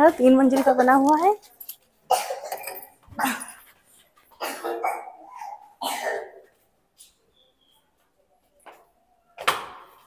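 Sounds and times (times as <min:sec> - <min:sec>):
dog barking: 0:04.7 - 0:05.7.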